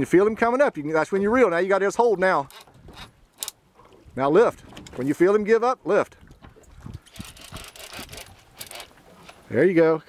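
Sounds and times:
water lapping against boat hull: 0.0s - 9.8s.

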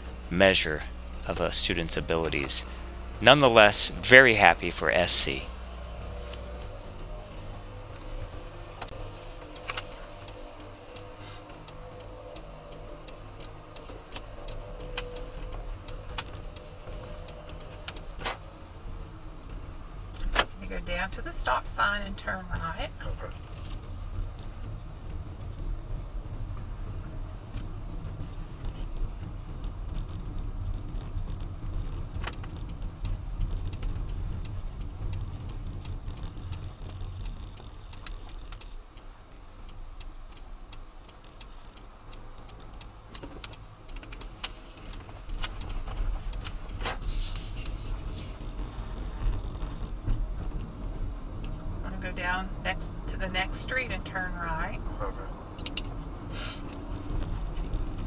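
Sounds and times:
car engine and road noise hum: 0.0s - 58.0s
turn signal ticking: 0.0s - 58.0s.

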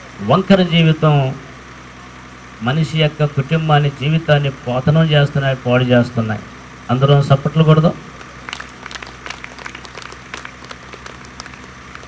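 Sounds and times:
steady low hum: 0.0s - 12.0s
audience clapping: 8.2s - 12.0s.

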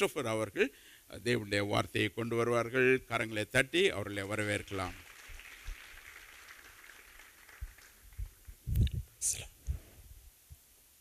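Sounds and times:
faint applause: 4.5s - 8.6s.

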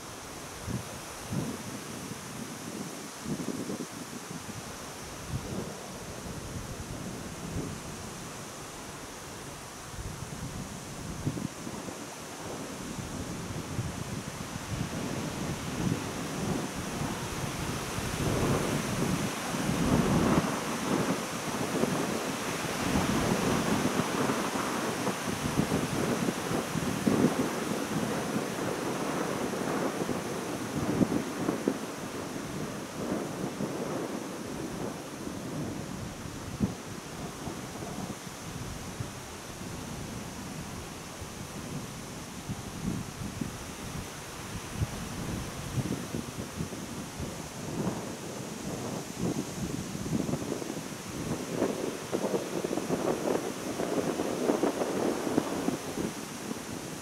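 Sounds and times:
wind buffeting microphone: 0.0s - 57.0s.

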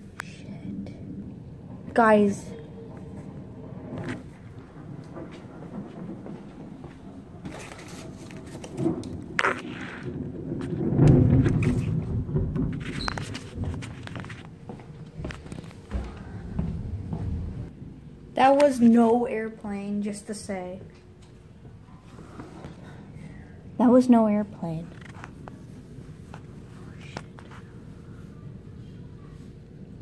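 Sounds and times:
loud low thunder rumble: 0.9s - 14.0s, 15.8s - 18.4s.

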